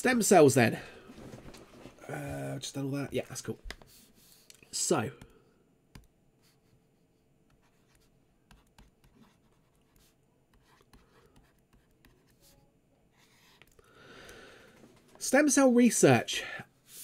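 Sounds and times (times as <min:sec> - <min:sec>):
stylus tapping and scratching on screen: 0:03.5 - 0:06.8, 0:07.4 - 0:12.6, 0:13.2 - 0:13.8.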